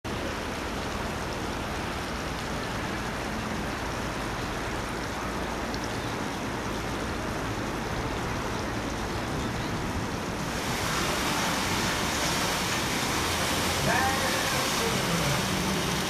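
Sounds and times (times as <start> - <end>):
steady rushing outdoor noise: 0.0 - 16.0.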